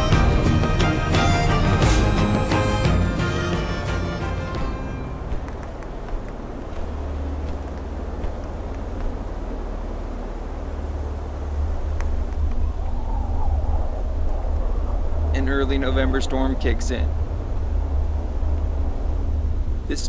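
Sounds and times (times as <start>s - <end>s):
snowstorm wind rumbling: 3.9s - 20.0s.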